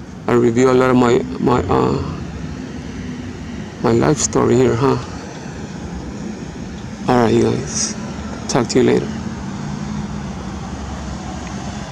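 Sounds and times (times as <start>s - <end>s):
low engine hum: 0.0s - 11.9s
passing cars: 0.0s - 11.9s.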